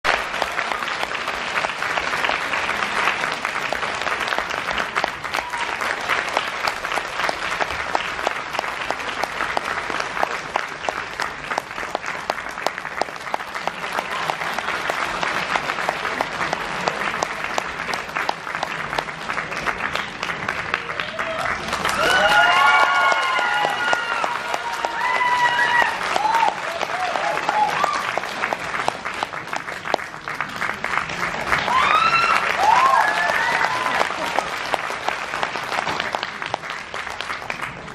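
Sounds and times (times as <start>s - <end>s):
audience applauding: 0.0s - 37.9s.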